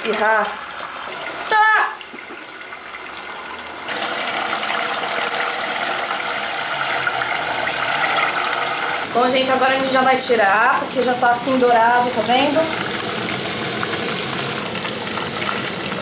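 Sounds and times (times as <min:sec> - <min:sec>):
tofu frying in hot oil: 0:00.0 - 0:16.0.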